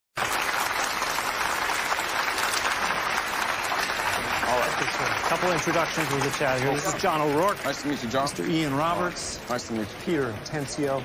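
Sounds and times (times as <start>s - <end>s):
audience applauding: 0.2s - 9.6s.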